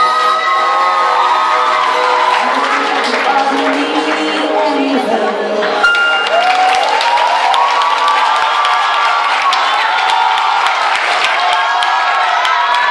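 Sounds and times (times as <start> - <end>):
audience cheering and screaming: 0.0 - 12.9
scattered clapping: 1.8 - 4.8, 5.9 - 12.9.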